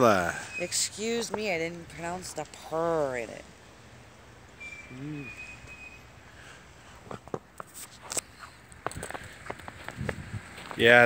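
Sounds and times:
footsteps crunching in snow: 0:06.9 - 0:10.9.

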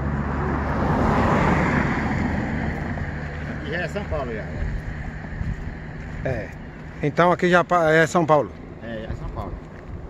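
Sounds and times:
road vehicle passing by: 0:00.0 - 0:10.0.

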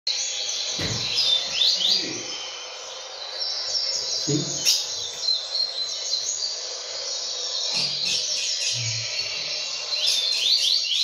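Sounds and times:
bird warbling song: 0:00.1 - 0:11.0.

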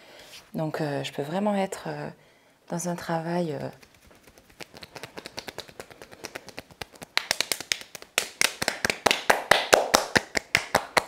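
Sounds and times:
hands slapping skin rapidly: 0:03.6 - 0:11.0.

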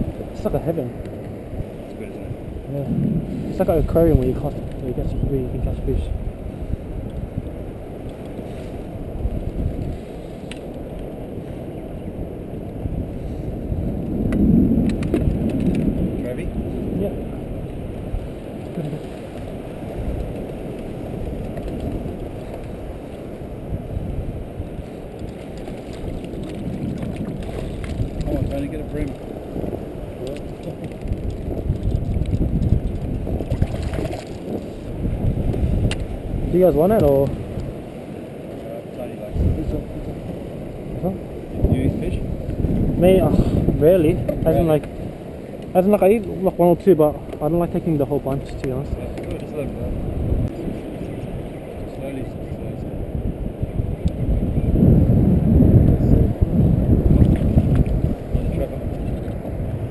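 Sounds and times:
wind and sea rumble: 0:00.0 - 0:59.9.

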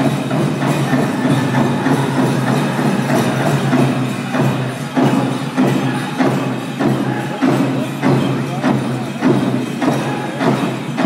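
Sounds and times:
drum group singing: 0:00.0 - 0:11.0
large drum beat: 0:00.0 - 0:11.0.

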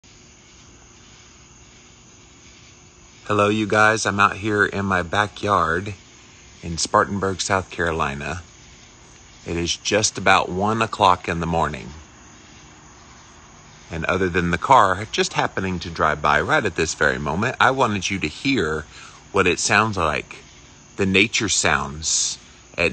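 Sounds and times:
even hiss: 0:00.0 - 0:22.9.

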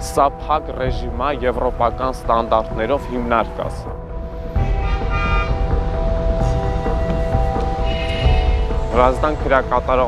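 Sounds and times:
background music sustained notes: 0:00.0 - 0:10.0
street traffic rumble: 0:01.0 - 0:10.0
car horn: 0:04.6 - 0:07.2, 0:07.8 - 0:08.8.

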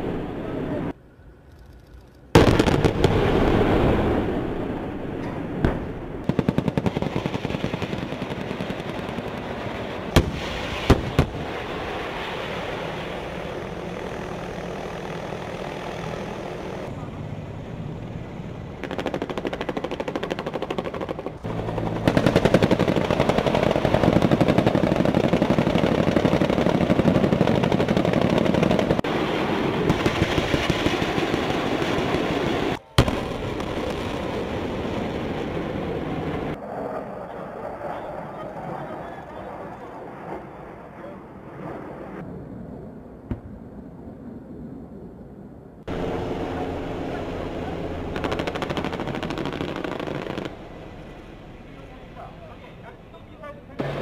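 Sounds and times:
explosions: 0:02.4 - 0:13.7, 0:18.8 - 0:36.6, 0:48.0 - 0:50.6
sharp gunshots: 0:10.2 - 0:11.6, 0:21.8 - 0:28.9, 0:48.1 - 0:50.6.

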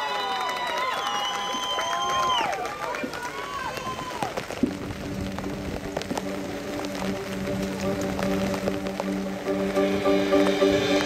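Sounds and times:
marching band low chord: 0:04.8 - 0:11.0.

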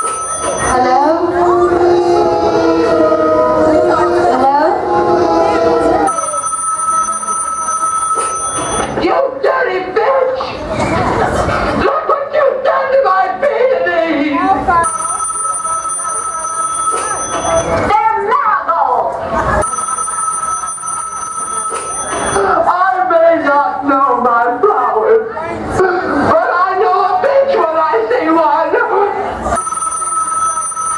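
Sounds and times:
telephone ringing: 0:00.0 - 0:00.8, 0:06.1 - 0:09.0, 0:14.8 - 0:17.8, 0:19.6 - 0:22.6, 0:29.6 - 0:30.9.

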